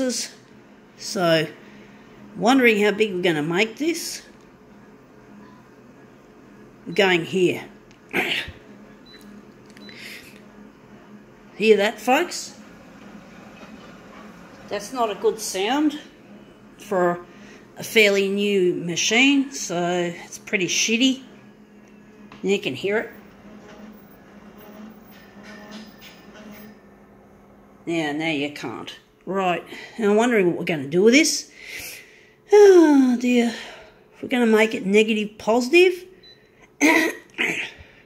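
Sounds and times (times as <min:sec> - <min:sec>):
copier humming: 0:00.0 - 0:32.4
person coughing: 0:08.1 - 0:08.6, 0:36.8 - 0:37.8.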